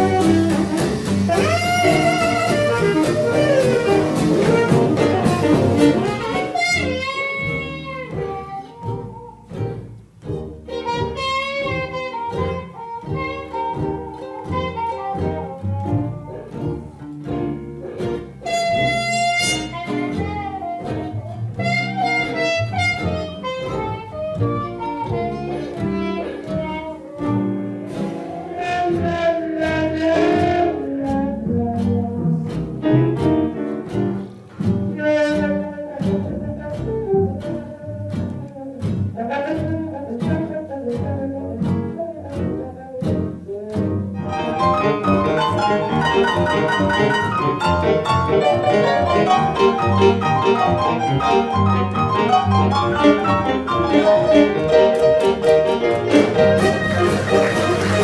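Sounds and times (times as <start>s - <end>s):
muted trumpet: 0.0s - 9.0s, 18.4s - 20.8s, 21.6s - 27.3s, 35.0s - 37.6s, 56.1s - 58.0s
alto saxophone solo: 0.0s - 9.7s, 10.7s - 16.8s, 18.4s - 32.2s, 34.9s - 58.0s
jazz band playing: 0.0s - 58.0s
walking double bass: 0.0s - 58.0s.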